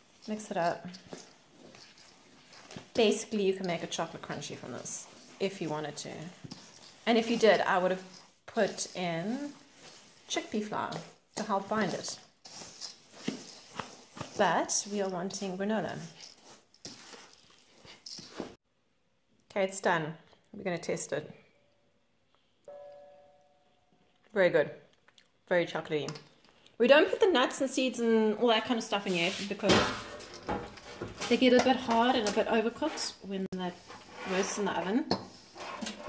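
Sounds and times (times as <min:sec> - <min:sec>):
hand mixing sticky oats in bowl: 0:00.0 - 0:18.6, 0:26.9 - 0:36.0.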